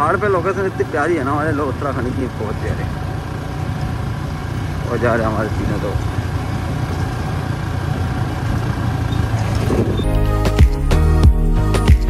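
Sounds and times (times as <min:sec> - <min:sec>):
wind and road noise: 0:00.0 - 0:10.8
motorcycle engine running: 0:00.0 - 0:10.9.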